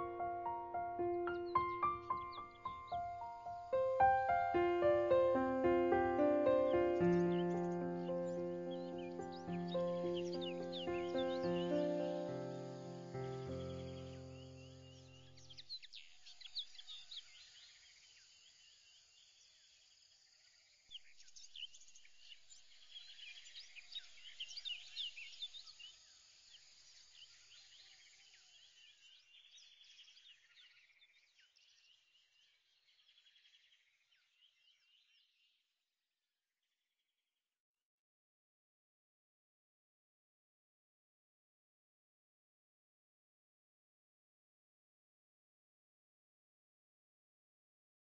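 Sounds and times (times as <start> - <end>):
musical chord: 0.0 - 14.5
birds chirping: 0.0 - 17.4.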